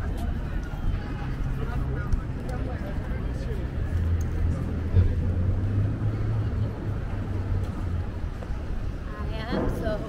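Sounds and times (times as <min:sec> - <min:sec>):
distant traffic rumble: 0:00.0 - 0:10.0.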